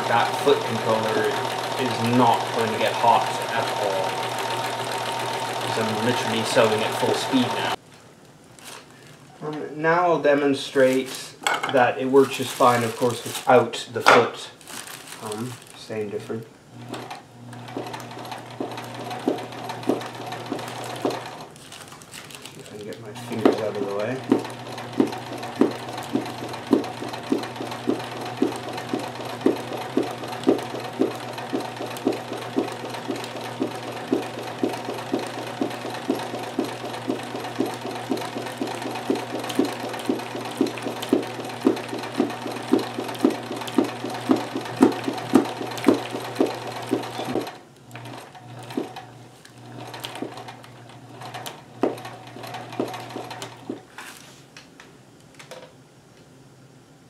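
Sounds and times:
sewing machine running fast: 0.0s - 7.8s, 16.8s - 21.5s, 23.0s - 53.8s.

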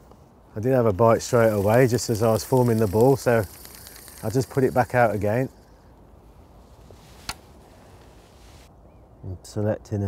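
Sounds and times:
fishing reel bail snapping shut: 1.6s - 5.1s.

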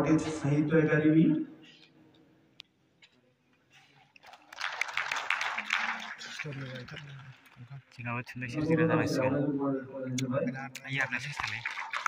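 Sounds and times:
audience applauding: 4.2s - 8.1s, 10.8s - 12.0s.

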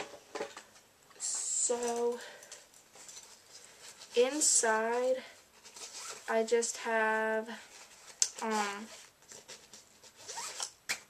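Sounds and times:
backpack zipper pulled open: 10.2s - 10.8s.

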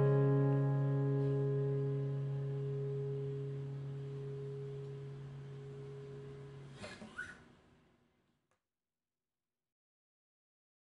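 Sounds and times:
acoustic guitar chord ringing: 0.0s - 6.8s.

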